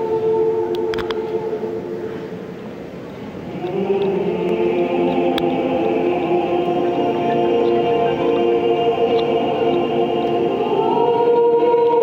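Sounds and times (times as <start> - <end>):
mixed choir singing in harmony: 0.0 - 2.5, 3.3 - 12.0.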